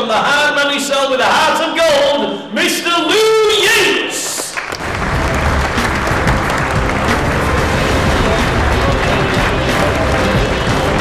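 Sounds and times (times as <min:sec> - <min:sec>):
crowd applauding: 0:04.2 - 0:11.0
loud music with heavy bass: 0:04.8 - 0:11.0.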